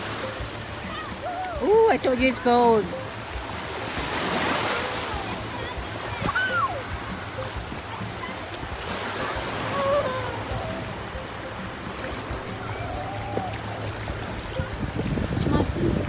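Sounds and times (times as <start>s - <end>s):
small waves washing on sand: 0.0s - 16.0s
wind on microphone: 4.2s - 16.0s.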